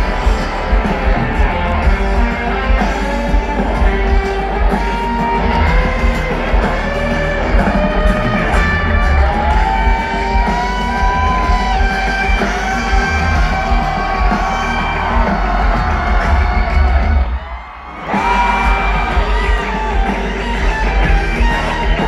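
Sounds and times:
rock band playing live: 0:00.0 - 0:22.0.

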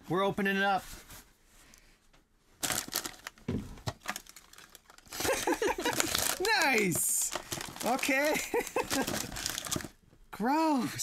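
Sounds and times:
box packaging rustling: 0:02.6 - 0:10.0.

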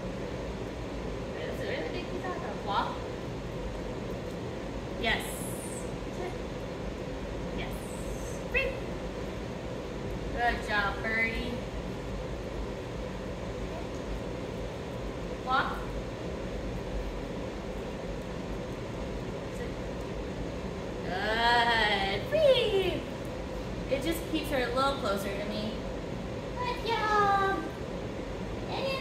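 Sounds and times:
low room hum: 0:00.0 - 0:29.0.

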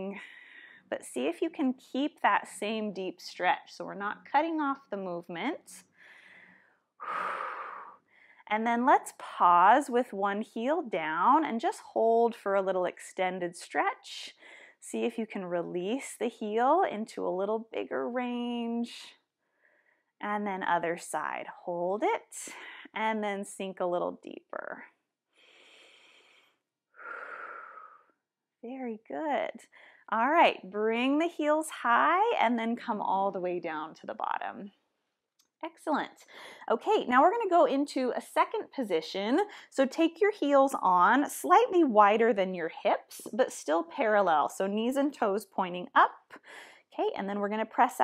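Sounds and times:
woman breathing: 0:00.2 - 0:00.9, 0:05.9 - 0:08.5, 0:14.4 - 0:14.8, 0:19.4 - 0:20.2, 0:22.5 - 0:23.0, 0:25.3 - 0:28.2, 0:29.7 - 0:30.1, 0:36.3 - 0:36.7, 0:46.4 - 0:46.9.

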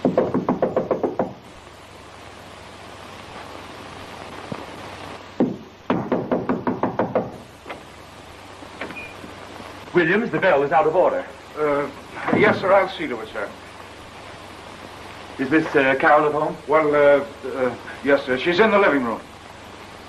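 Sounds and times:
knuckles knocking on door: 0:00.0 - 0:01.4, 0:05.4 - 0:07.4
film soundtrack hiss: 0:00.0 - 0:20.0.

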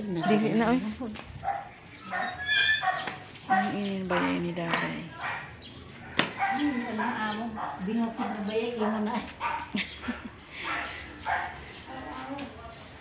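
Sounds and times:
people talking: 0:00.0 - 0:01.2, 0:03.5 - 0:05.2
dog barking: 0:00.1 - 0:00.7, 0:01.4 - 0:09.8, 0:10.6 - 0:11.6.

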